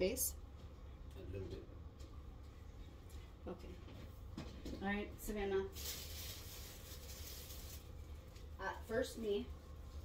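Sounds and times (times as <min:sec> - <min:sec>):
low room hum: 0:00.0 - 0:10.0
soft rustling: 0:05.7 - 0:08.5.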